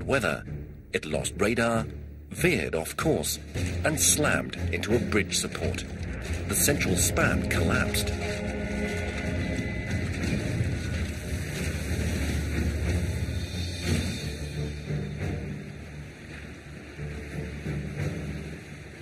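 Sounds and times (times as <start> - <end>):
heavy low rumble: 0.0 - 16.6
wind and water noise: 0.0 - 19.0.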